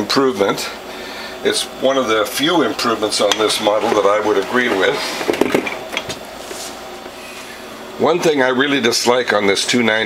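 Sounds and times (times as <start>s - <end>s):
juicer humming: 0.0s - 8.6s.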